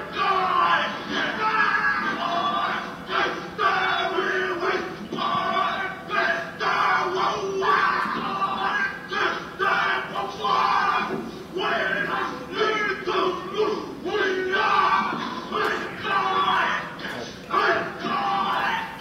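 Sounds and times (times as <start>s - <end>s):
group chanting and shouting: 0.0s - 19.0s.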